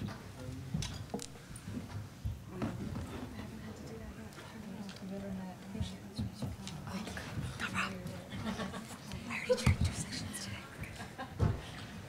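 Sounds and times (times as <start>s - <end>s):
voices murmuring in a hall: 0.0s - 12.0s.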